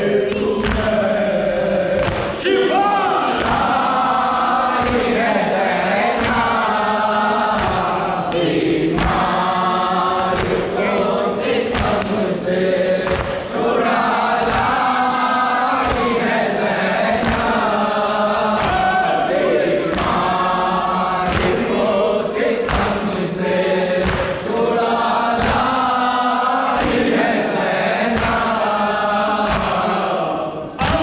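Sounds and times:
men chanting in chorus: 0:00.0 - 0:31.0
chest-beating thuds: 0:22.6 - 0:25.9.

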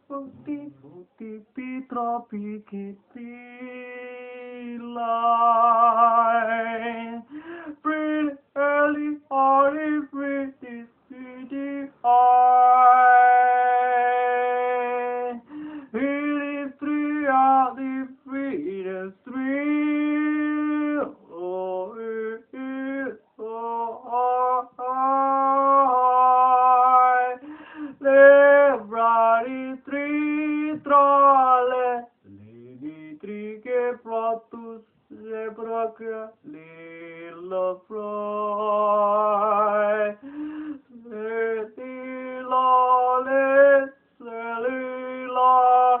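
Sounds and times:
person singing unaccompanied: 0:00.0 - 0:46.0.

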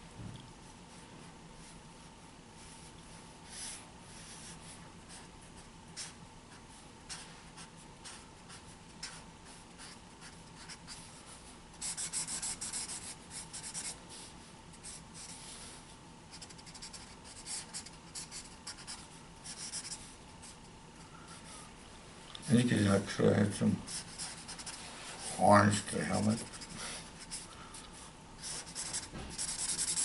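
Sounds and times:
marker scratching on paper: 0:07.1 - 0:11.1, 0:11.8 - 0:14.0, 0:16.3 - 0:20.1, 0:23.9 - 0:25.5, 0:26.1 - 0:27.5, 0:28.4 - 0:30.0.

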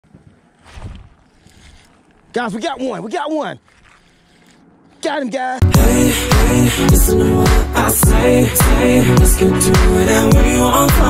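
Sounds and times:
wind rumbling on microphone: 0:00.0 - 0:01.9.

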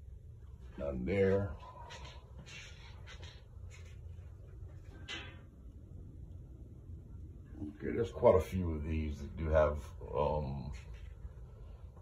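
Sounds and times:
air hum through ventilation: 0:00.0 - 0:12.0.

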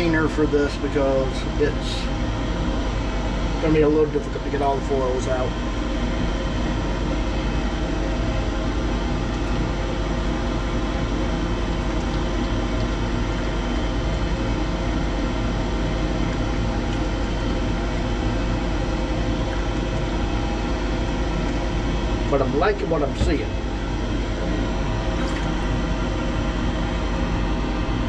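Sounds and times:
machine hum with steady tones: 0:00.0 - 0:28.0.

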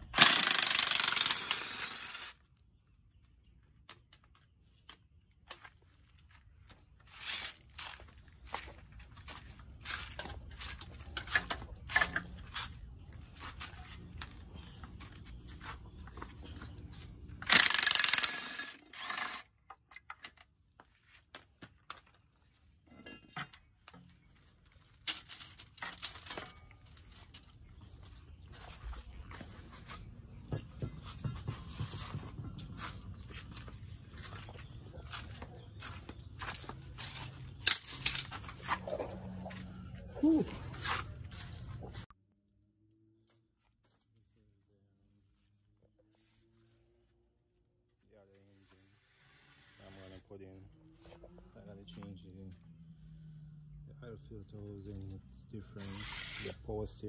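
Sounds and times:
power tool running: 0:00.1 - 0:02.4, 0:17.4 - 0:19.5
metal tools clinking: 0:10.0 - 0:12.8, 0:17.3 - 0:20.5, 0:22.8 - 0:24.2, 0:24.9 - 0:27.6, 0:36.4 - 0:39.5.

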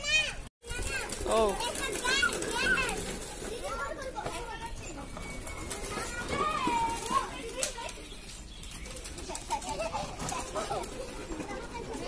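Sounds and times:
children calling out: 0:00.0 - 0:12.0.

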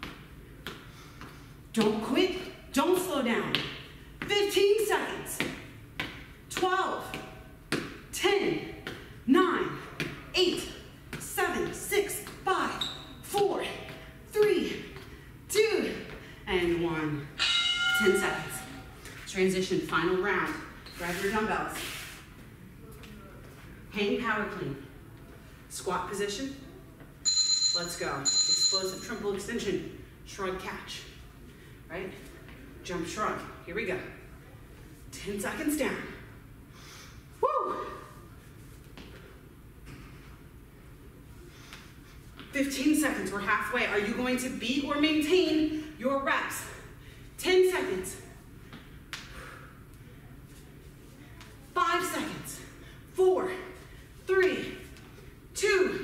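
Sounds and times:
voice: 0:53.2 - 0:54.8.

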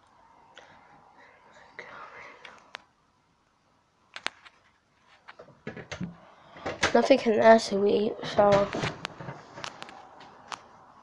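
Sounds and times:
faint whispering: 0:00.5 - 0:02.9.

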